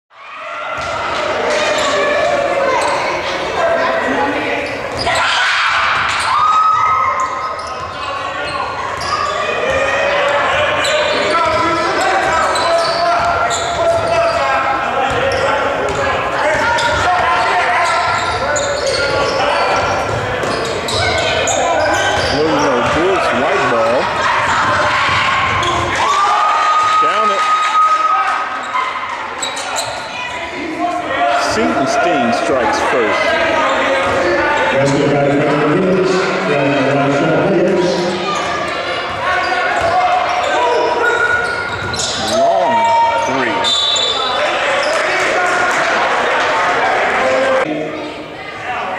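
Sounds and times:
voices in a gym: 0.1s - 48.9s.

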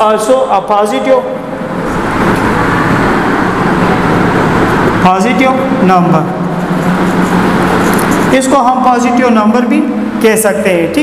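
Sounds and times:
loud rushing noise: 1.0s - 9.2s.

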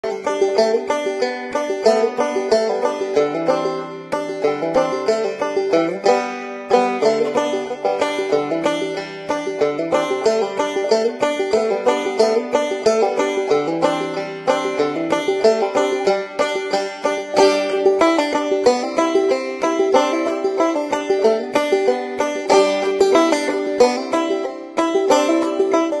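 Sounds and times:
fast plucked-string music: 0.0s - 26.0s.

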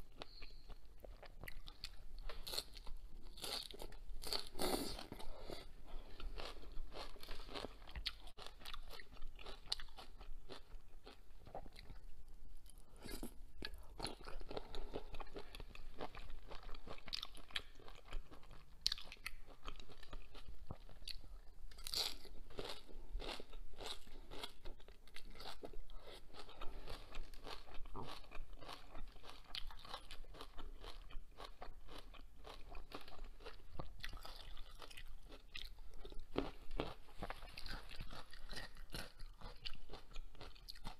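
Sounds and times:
crunching and chewing herbs: 0.0s - 12.0s, 12.6s - 40.9s.

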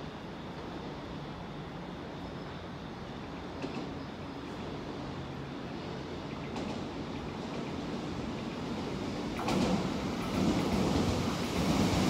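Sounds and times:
train wheels rumbling on rails: 0.0s - 12.0s.

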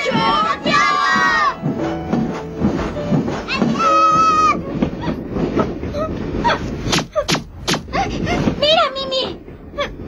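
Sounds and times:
cartoon train wheels clattering: 0.0s - 10.0s.

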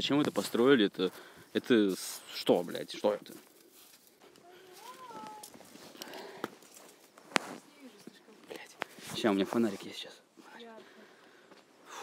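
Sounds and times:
faint voice: 4.4s - 5.6s.

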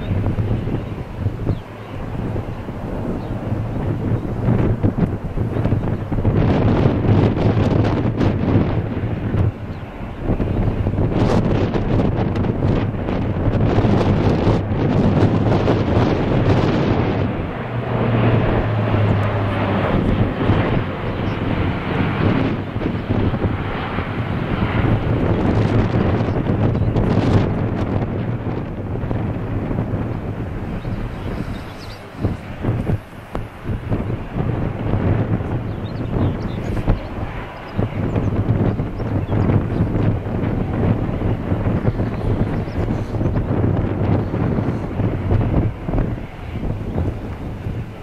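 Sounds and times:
propeller aircraft droning overhead: 0.0s - 48.0s
wind noise on microphone: 0.0s - 48.0s.

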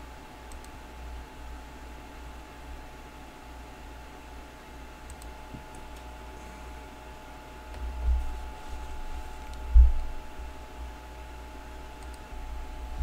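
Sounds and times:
faint hum: 0.0s - 13.0s.

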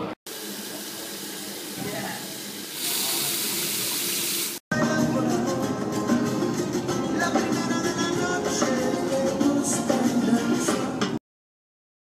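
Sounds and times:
rushing hiss: 2.7s - 4.6s
guitar and singing from television: 4.8s - 11.2s.

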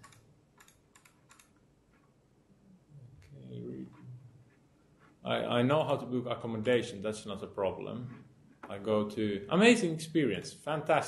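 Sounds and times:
laptop keyboard clicks: 0.0s - 1.5s.

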